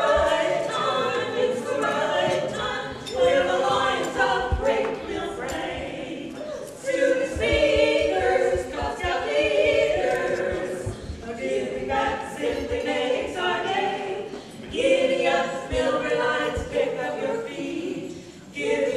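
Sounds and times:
women singing a cappella harmony: 0:00.0 - 0:18.9.

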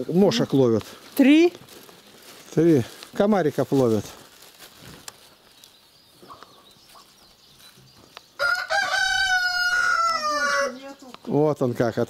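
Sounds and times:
rooster crowing: 0:08.4 - 0:10.8.

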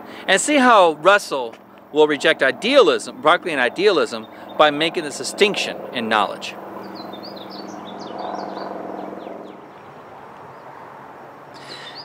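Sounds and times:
birds chirping: 0:00.0 - 0:12.0
distant car humming: 0:00.0 - 0:12.0.

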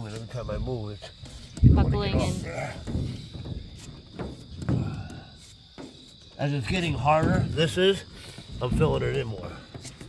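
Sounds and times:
low thump: 0:06.7 - 0:08.0.

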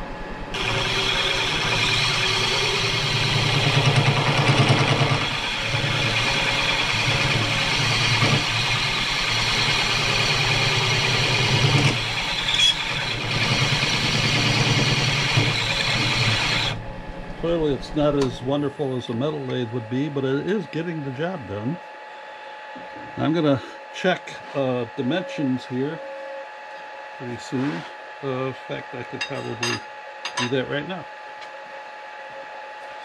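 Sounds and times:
lathe low hum: 0:00.0 - 0:33.0
lathe cutting metal scraping: 0:00.5 - 0:16.9.

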